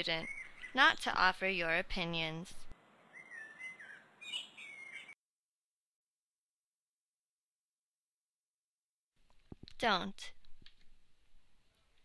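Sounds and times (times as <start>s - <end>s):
high wavering chirping calls: 0.0s - 1.0s, 3.1s - 5.2s.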